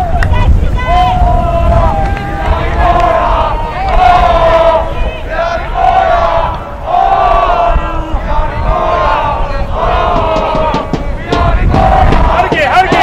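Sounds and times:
crowd chanting in unison: 1.3 - 13.0.

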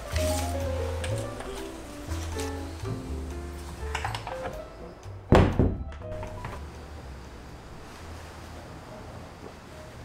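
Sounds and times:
quiet background music: 0.0 - 10.0
loud thunks: 5.3 - 6.6.

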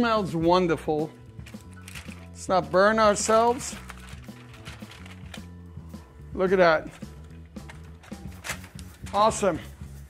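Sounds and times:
soft music with light beat: 0.0 - 10.0.

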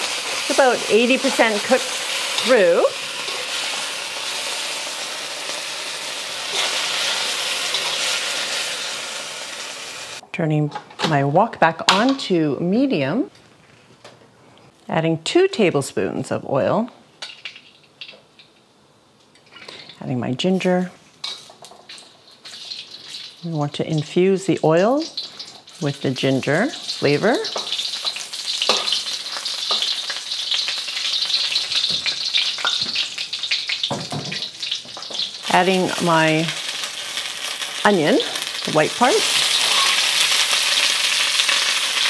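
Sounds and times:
beef sizzling in a wok: 0.0 - 10.2, 20.6 - 42.0.

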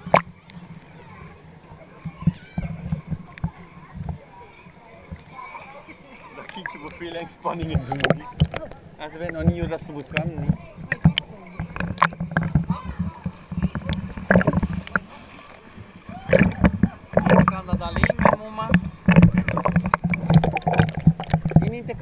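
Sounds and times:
pool water splashing: 0.0 - 22.0.

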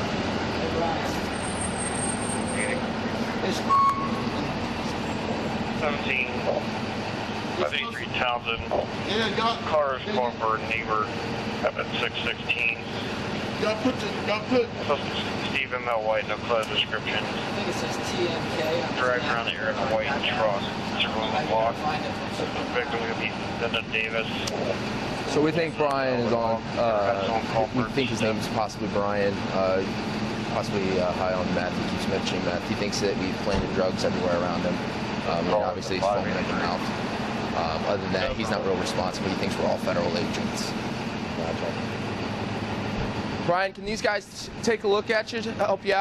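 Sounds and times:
indistinct voices talking: 0.0 - 46.0
vehicle engine drone: 0.0 - 46.0
faint voice: 11.6 - 24.8.

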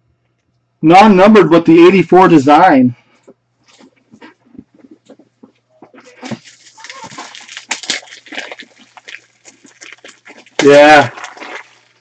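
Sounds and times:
trading cards and wrappers handled: 5.9 - 10.6.

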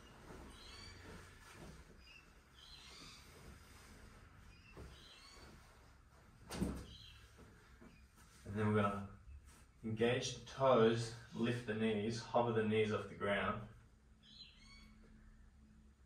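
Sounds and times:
faint bird chirps: 0.0 - 3.8, 4.5 - 5.8, 6.8 - 8.1, 14.2 - 15.4
cloth rustling: 0.0 - 8.6, 9.3 - 9.8.

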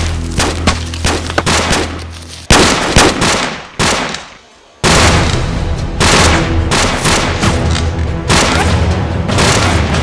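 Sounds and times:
gunshots with echoing tail: 0.4 - 7.6.

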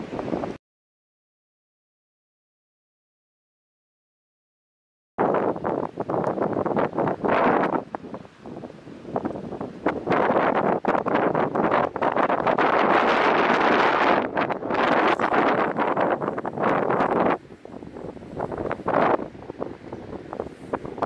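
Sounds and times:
wind buffeting microphone: 0.0 - 0.6, 5.2 - 21.0.

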